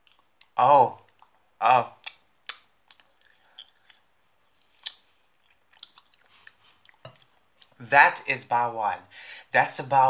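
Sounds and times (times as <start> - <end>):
person chewing: 0.0 - 1.4, 2.0 - 7.8
wet mouth clicks: 2.0 - 4.0, 4.6 - 7.8.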